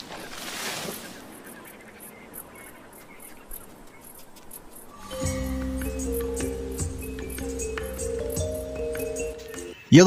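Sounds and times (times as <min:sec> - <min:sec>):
foliage rustling: 0:00.0 - 0:05.3.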